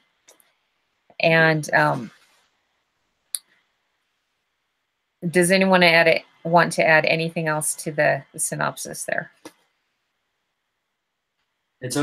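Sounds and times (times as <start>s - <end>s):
person speaking: 1.2s - 2.1s.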